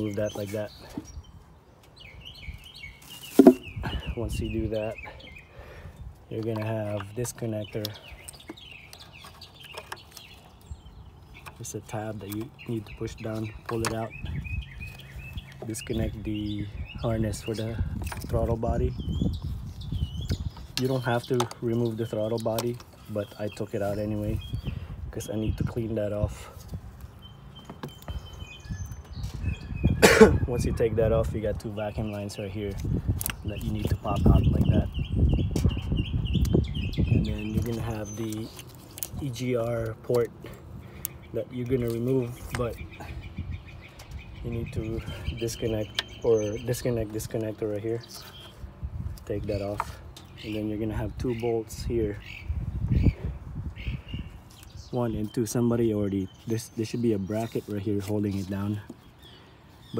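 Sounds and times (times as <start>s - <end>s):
birds chirping: 0.0s - 59.9s
rubber hoses rustling and clicking: 6.3s - 14.2s, 37.4s - 43.0s.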